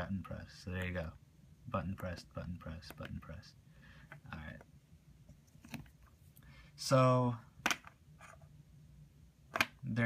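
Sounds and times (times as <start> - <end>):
person speaking: 0.0 - 7.6.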